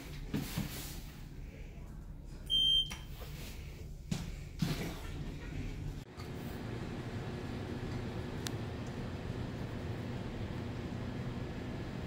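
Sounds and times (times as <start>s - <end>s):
elevator button beep: 2.5s - 3.1s.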